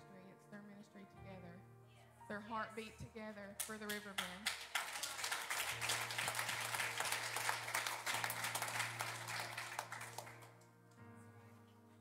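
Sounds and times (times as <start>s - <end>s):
soft keyboard chords: 0.0s - 3.9s
congregation applauding: 4.2s - 10.7s.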